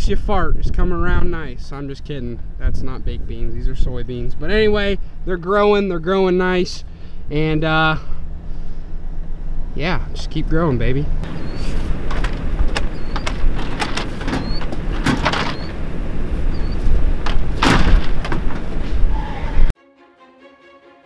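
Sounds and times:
wind rumbling on microphone: 0.0 - 5.0, 11.1 - 19.7
fan shutter knocking and rattling: 12.0 - 15.8, 17.2 - 18.8.

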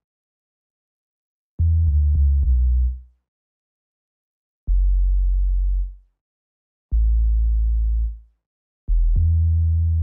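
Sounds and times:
deep synthesized bass notes: 1.6 - 3.0, 4.7 - 5.9, 6.9 - 8.2, 8.9 - 10.0.

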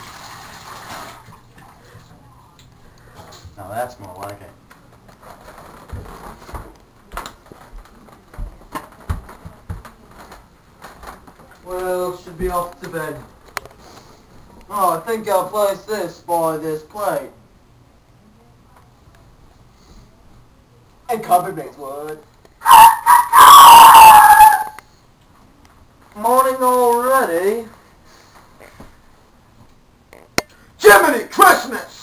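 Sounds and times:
footsteps on floor: 5.2 - 11.2
loud howling call: 22.6 - 24.8.

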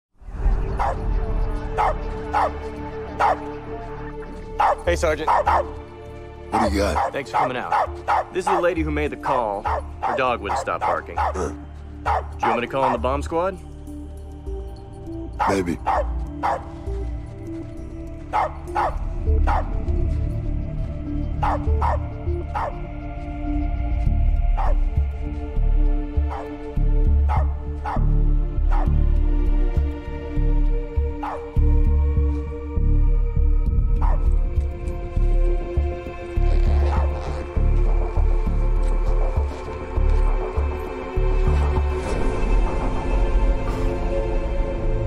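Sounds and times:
low sustained music score: 0.2 - 45.0
dog barking: 0.8 - 1.0, 1.7 - 2.6, 3.2 - 3.5, 4.6 - 5.8, 6.6 - 8.6, 9.6 - 13.0, 15.4 - 16.7, 18.3 - 19.8, 21.4 - 22.8, 24.6 - 24.8, 26.3 - 26.5, 27.3 - 28.1, 28.7 - 29.0, 31.2 - 31.6, 34.0 - 34.3.

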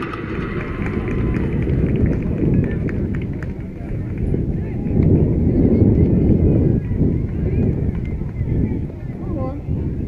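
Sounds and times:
faint distant voices: 0.0 - 10.0
wind buffeting microphone: 0.0 - 10.0.

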